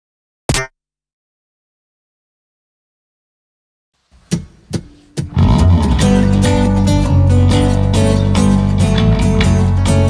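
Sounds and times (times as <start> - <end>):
band playing with bass guitar: 4.8 - 10.0.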